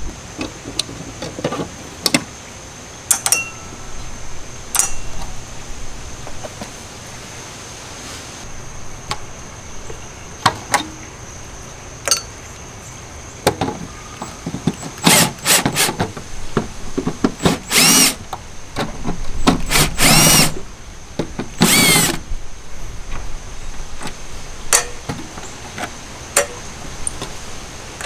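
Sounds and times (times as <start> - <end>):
cordless drill whirring: 14.8 - 15.9, 17.4 - 18.2, 19.5 - 20.6, 21.6 - 22.2.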